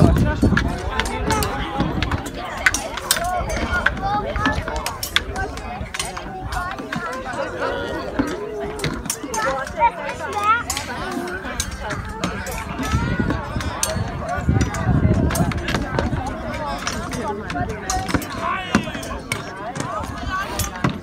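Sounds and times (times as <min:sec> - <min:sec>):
voices and shouts: 0:00.0 - 0:21.0
weapons striking wooden shields: 0:15.2 - 0:21.0.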